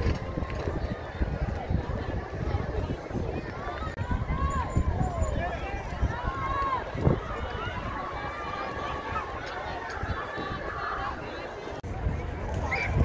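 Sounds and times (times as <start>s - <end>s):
people talking and calling out: 0.0s - 13.0s.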